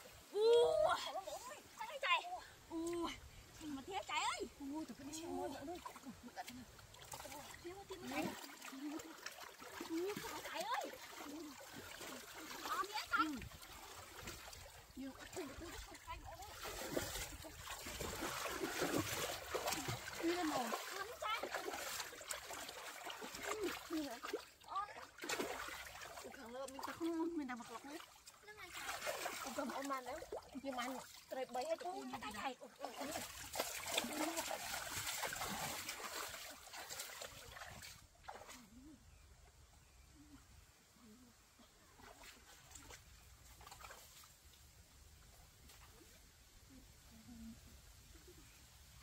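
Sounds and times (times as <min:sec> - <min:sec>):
water splashing in a stream: 0:00.0 - 0:40.0, 0:41.0 - 0:49.0
women talking and exclaiming: 0:00.3 - 0:13.6, 0:19.4 - 0:22.2
legs wading through water: 0:00.8 - 0:40.0, 0:41.6 - 0:46.4.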